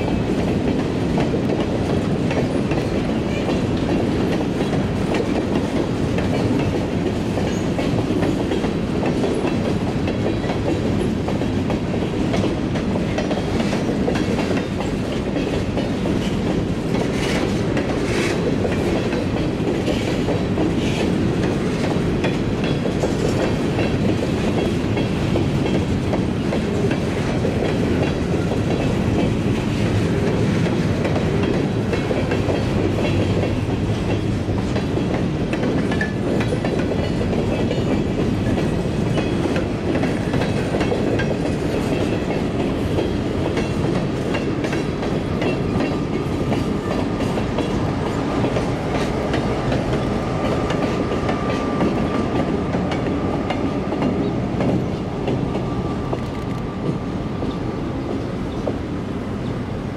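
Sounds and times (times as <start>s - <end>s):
clickety-clack over rail joints: 0.0s - 59.6s
train wheels rumbling on rails: 0.0s - 59.9s.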